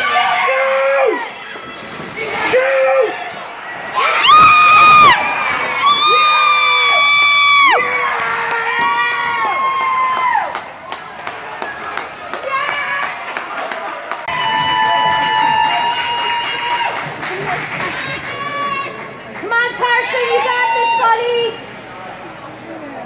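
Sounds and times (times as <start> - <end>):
spectators cheering: 0.0 - 1.6, 2.2 - 21.6.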